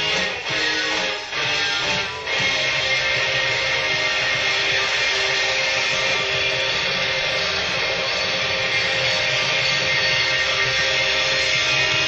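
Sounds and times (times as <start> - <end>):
distorted rock band playing live: 0.0 - 12.0.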